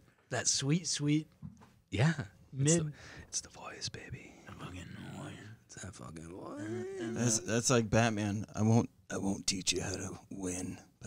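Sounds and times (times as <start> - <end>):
whispered murmuring: 3.4 - 5.6.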